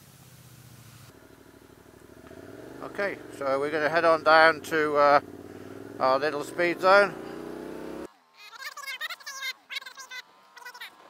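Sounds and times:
motorcycle engine: 0:00.4 - 0:08.1.

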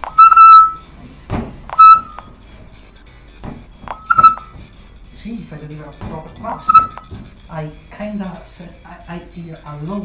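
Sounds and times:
short synthesized beep: 0:00.1 - 0:00.8, 0:01.8 - 0:02.3, 0:04.0 - 0:04.5, 0:06.6 - 0:07.0.

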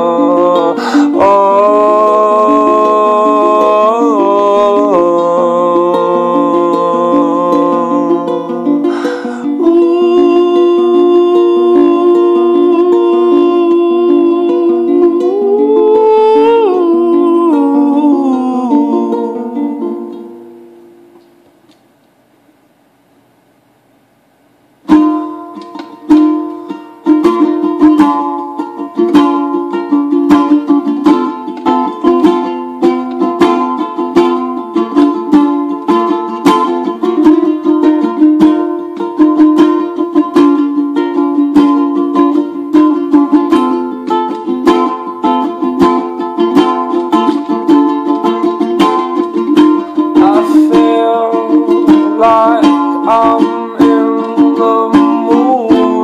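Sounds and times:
person singing: 0:00.0 - 0:20.7, 0:24.9 - 0:56.0
ukulele strumming: 0:00.0 - 0:22.0, 0:24.8 - 0:56.0.

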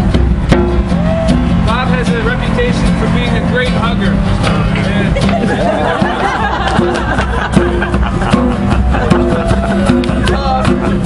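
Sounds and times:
street traffic rumble: 0:00.0 - 0:11.0
people talking: 0:01.7 - 0:06.9, 0:08.4 - 0:11.0.

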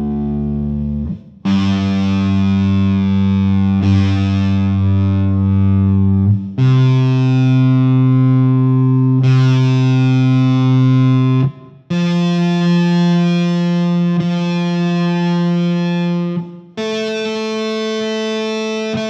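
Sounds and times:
distorted electric guitar notes: 0:00.0 - 0:19.0.

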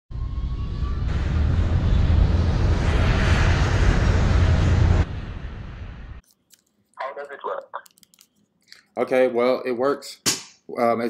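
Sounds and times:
loud low rumble: 0:00.1 - 0:06.2.

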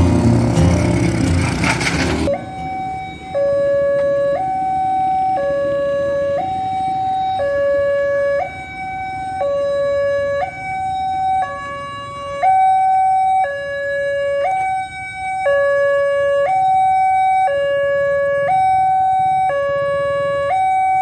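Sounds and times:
level crossing alarm two-tone: 0:02.2 - 0:08.7.

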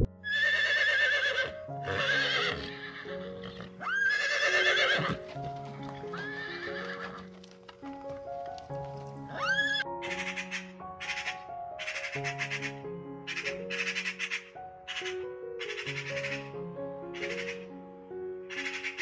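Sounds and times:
soft background music: 0:00.0 - 0:19.0
horse whinnying: 0:00.2 - 0:05.3, 0:06.1 - 0:07.3, 0:09.3 - 0:09.9.

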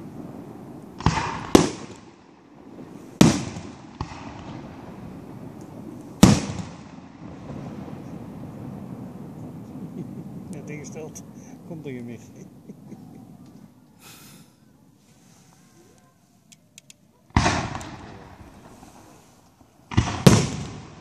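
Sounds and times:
firework shells bursting: 0:00.0 - 0:08.3, 0:16.0 - 0:21.0.

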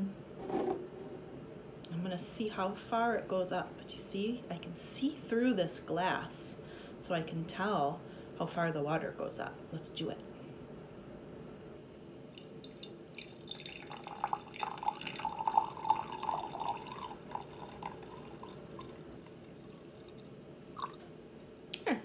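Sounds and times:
water pouring into glass jar: 0:12.4 - 0:21.0.

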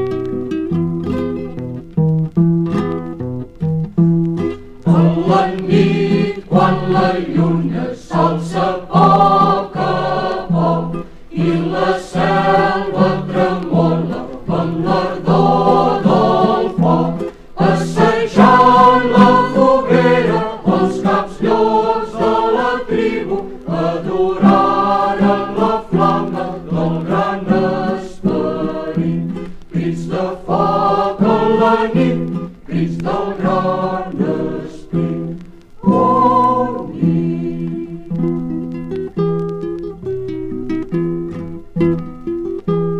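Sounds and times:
acoustic guitar strumming: 0:00.0 - 0:42.9
group singing folk song: 0:04.4 - 0:39.5.

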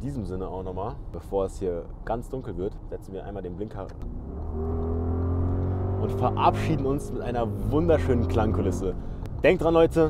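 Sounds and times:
car engine drone under throttle: 0:04.0 - 0:09.5.

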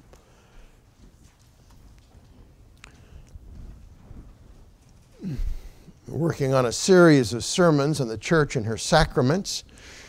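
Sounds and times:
low room rumble: 0:00.0 - 0:10.0.

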